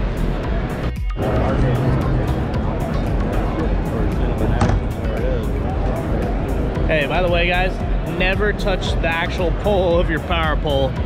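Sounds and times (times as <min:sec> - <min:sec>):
crowd chatter: 0:00.0 - 0:11.0
music with steady beat: 0:00.0 - 0:11.0.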